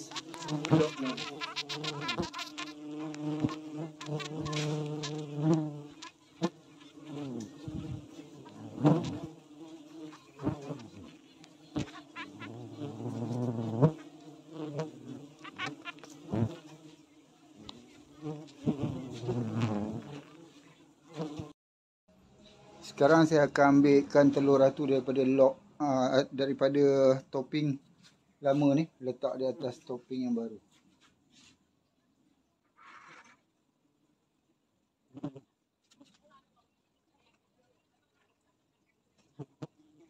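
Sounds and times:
bees buzzing: 0.0s - 21.6s.

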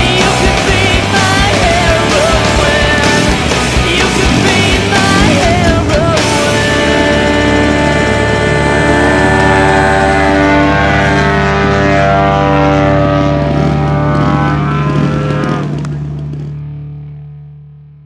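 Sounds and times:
model plane engine at high power: 0.0s - 17.3s.

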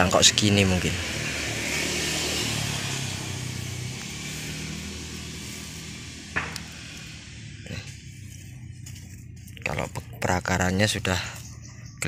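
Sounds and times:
passing motor vehicle: 0.0s - 12.0s.

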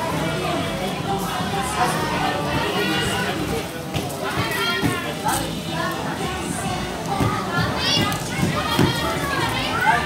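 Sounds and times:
chatter: 0.0s - 10.0s.

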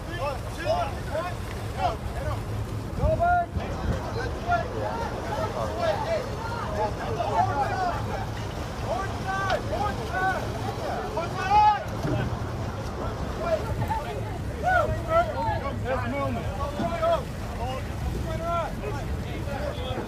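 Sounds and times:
boat engines: 0.0s - 20.0s.

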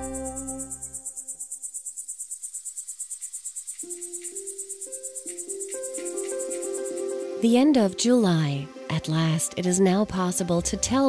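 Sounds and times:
crickets chirping: 0.0s - 9.0s.

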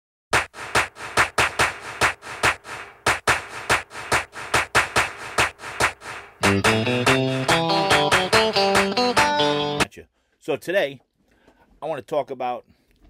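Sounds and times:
dry percussion beat: 0.4s - 9.8s.

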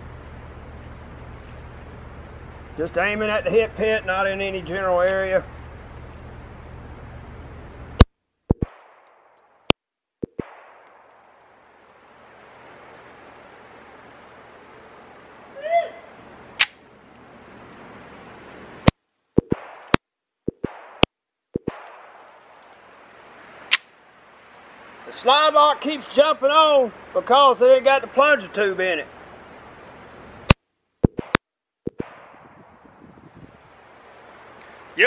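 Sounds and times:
pistol shots: 10.3s - 11.1s, 20.6s - 21.1s, 31.1s - 32.6s.

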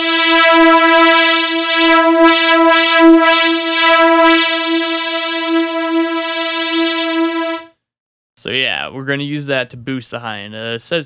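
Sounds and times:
synth lead filter sweep: 0.0s - 7.7s.

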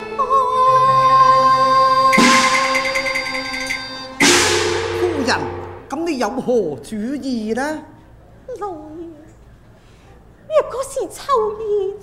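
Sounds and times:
cymbal and gong crash: 2.1s - 6.0s
held instrumental note: 2.1s - 6.0s
percussion roll: 2.1s - 6.3s.

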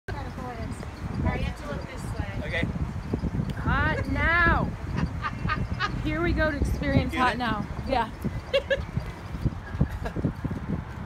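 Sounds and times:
people talking indistinctly: 0.1s - 9.3s
steady low rumble: 0.1s - 11.0s.

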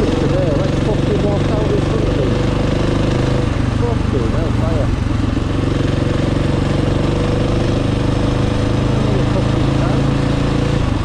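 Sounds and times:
dirt bike engine cruising: 0.0s - 11.0s
road and wind noise: 0.0s - 11.0s.

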